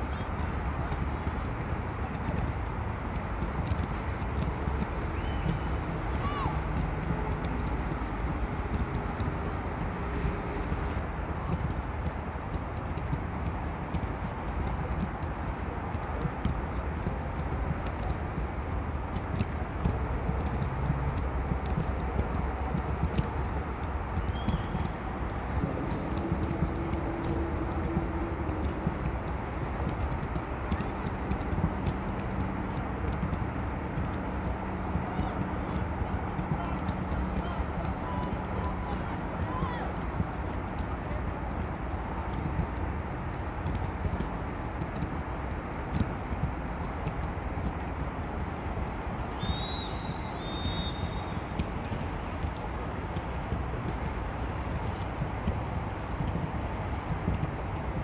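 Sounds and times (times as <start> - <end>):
distant players shouting: 5.1 - 7.2.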